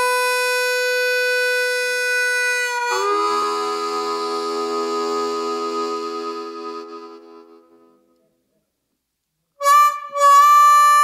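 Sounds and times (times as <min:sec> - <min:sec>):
harmonica blues: 0:00.0 - 0:08.0, 0:09.6 - 0:11.0.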